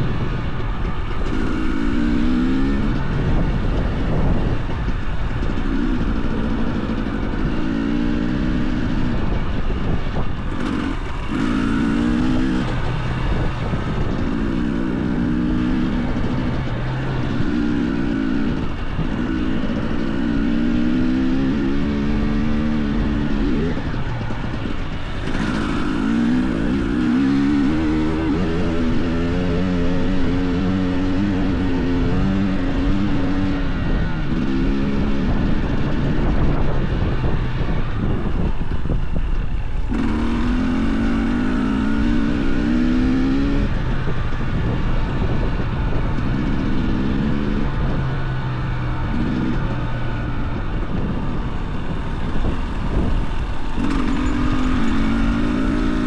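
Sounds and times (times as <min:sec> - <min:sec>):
two-stroke motorcycle engine revving: 0:00.0 - 0:56.0.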